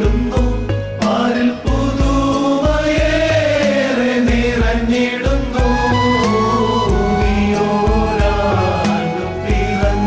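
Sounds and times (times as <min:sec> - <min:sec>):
men's choir singing: 0:00.0 - 0:10.0
orchestrated backing track with beat: 0:00.0 - 0:10.0.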